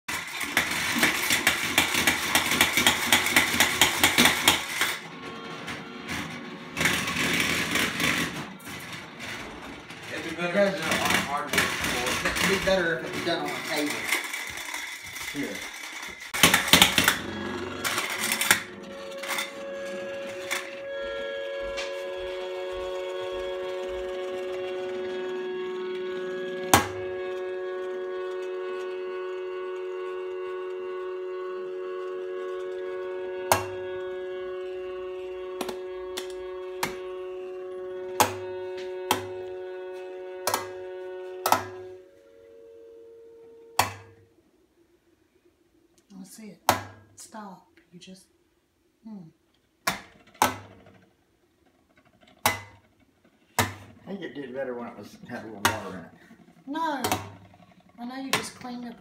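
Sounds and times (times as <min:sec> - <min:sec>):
humming top spinning: 0:00.1 - 0:46.1, 0:49.6 - 0:59.0.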